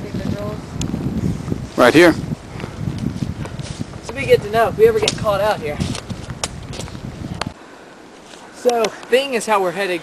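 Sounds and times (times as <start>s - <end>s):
microphone handling noise: 0.0s - 7.6s
low wind rumble: 0.0s - 9.2s
twigs snapping: 5.0s - 7.6s.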